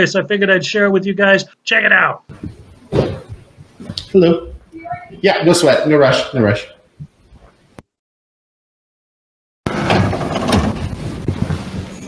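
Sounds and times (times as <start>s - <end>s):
footsteps on hard floor: 2.3s - 4.2s, 10.7s - 12.0s.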